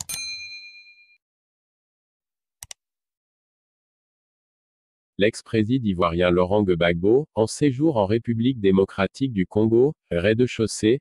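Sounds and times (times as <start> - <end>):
notification bell ding: 0.0 - 1.2.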